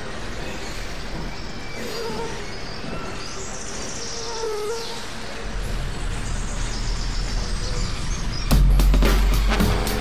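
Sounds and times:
electronic music hissing texture: 4.9s - 10.0s.

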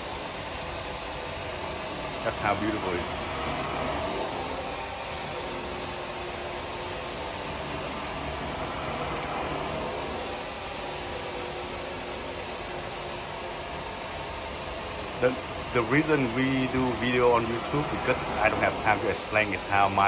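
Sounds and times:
carpet extraction wand hissing: 0.0s - 20.0s.

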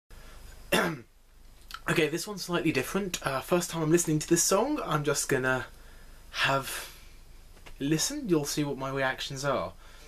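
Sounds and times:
man coughing: 0.7s - 1.1s.

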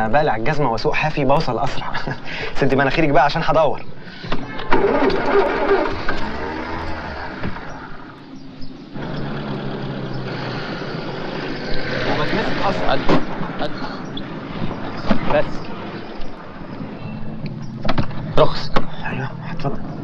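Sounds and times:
voices: 0.0s - 20.0s
car engine starting and running: 4.3s - 18.7s.

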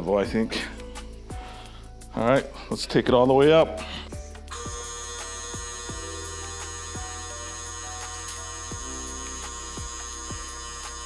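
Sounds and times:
electric pump motor humming: 4.5s - 11.0s.

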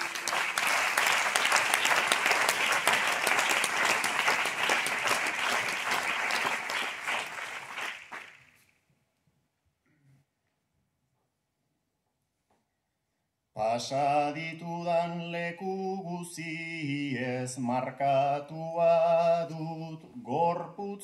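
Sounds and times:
audience applauding: 0.0s - 8.6s.

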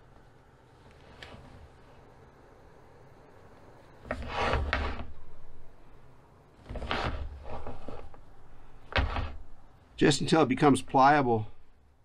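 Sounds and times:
plastic hose rubbing and scraping: 4.0s - 5.3s, 6.6s - 9.6s.

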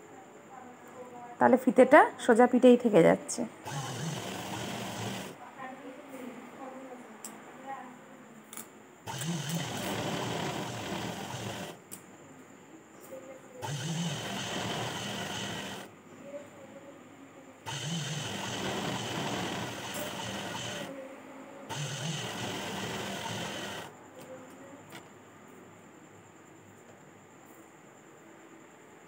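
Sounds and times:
sewing machine stitching: 3.6s - 5.4s, 9.1s - 11.8s, 13.6s - 15.9s, 17.7s - 20.9s, 21.7s - 23.9s.

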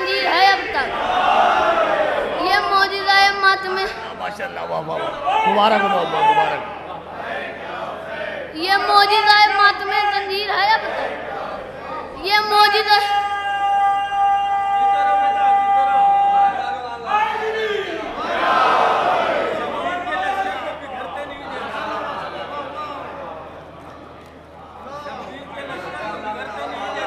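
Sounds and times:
indistinct chatter in large hall: 0.0s - 27.0s.

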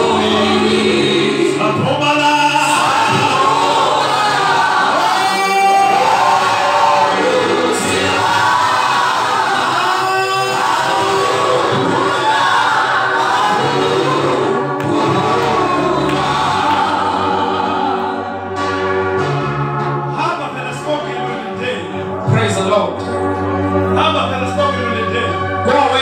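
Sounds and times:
group singing gospel: 0.0s - 19.7s.

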